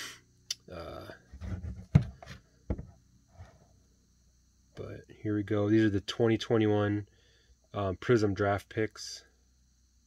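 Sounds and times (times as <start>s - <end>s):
cardboard box being handled: 1.4s - 3.6s
knock on box: 1.8s - 2.9s.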